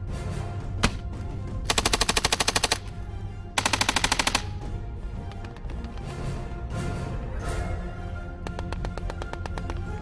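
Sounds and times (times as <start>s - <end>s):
machine gun automatic bursts: 3.6s - 4.5s.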